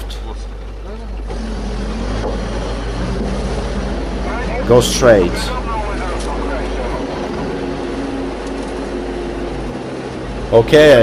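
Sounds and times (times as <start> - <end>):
vehicle engine drone from cab: 0.0 - 11.0.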